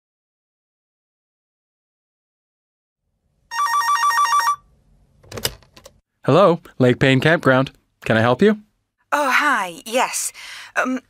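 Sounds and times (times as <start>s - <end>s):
electronic telephone ringing: 3.5s - 4.6s.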